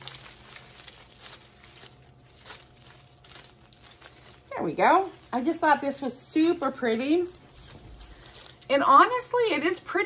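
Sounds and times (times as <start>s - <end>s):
plastic leaves rustling: 0.0s - 10.0s.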